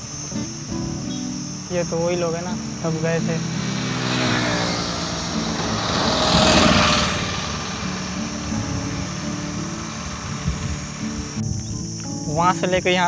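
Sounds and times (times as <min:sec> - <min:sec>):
pickup truck passing by: 0:00.0 - 0:11.5.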